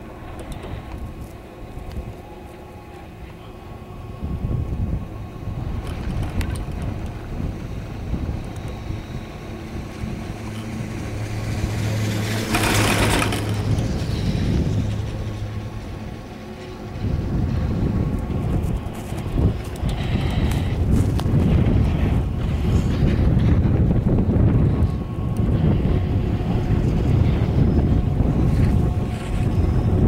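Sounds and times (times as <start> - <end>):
hum: 0.0 - 30.0
wind rumble on microphone: 0.0 - 30.0
chairlift clattering over wheels: 9.9 - 16.7.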